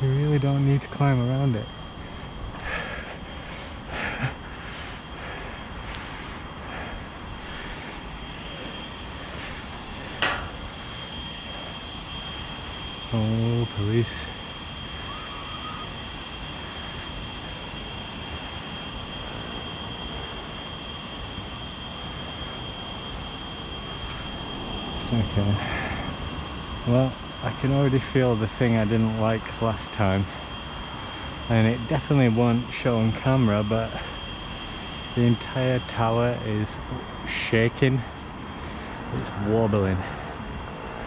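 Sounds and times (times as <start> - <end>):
steady rumbling noise: 0.0 - 41.0
thin high whine: 0.0 - 41.0
metal clanks and knocks: 10.2 - 10.6.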